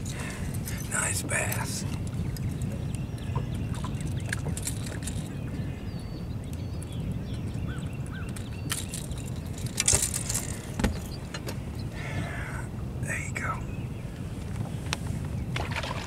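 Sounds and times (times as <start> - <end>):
fish and tackle rattling: 0.0 - 5.6, 6.8 - 11.7, 15.5 - 16.0.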